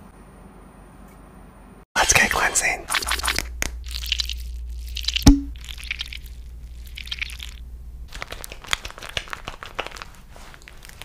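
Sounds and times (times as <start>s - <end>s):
pump bottle hissing squirts: 2.6s - 7.6s
hands lathering foam squelching: 2.9s - 11.0s.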